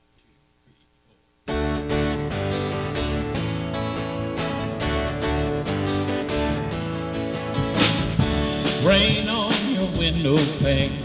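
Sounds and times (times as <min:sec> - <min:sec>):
strummed acoustic guitar: 0:01.5 - 0:11.0
steady beat: 0:01.6 - 0:11.0.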